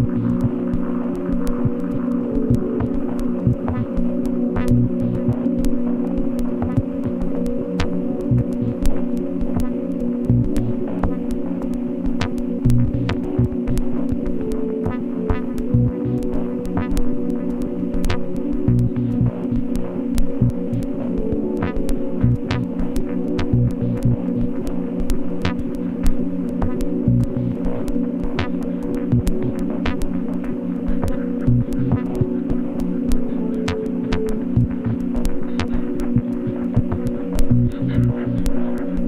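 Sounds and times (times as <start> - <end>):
throbbing low drone: 0.0 - 7.2, 7.9 - 9.0, 10.2 - 11.2, 12.6 - 24.6, 26.7 - 27.8, 29.1 - 30.0, 30.8 - 39.0.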